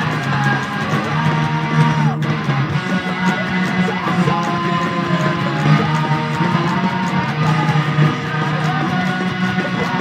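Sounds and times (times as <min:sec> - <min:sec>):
electric guitar playing punk rock: 0:00.0 - 0:10.0.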